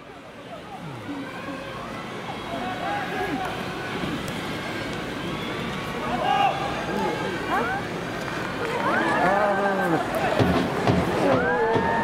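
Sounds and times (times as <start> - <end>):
stadium crowd noise: 0.0 - 12.0
voices: 0.0 - 12.0.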